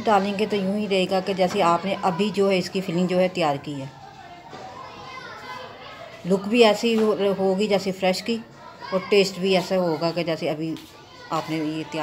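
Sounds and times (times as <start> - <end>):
faint background voices: 0.0 - 12.0.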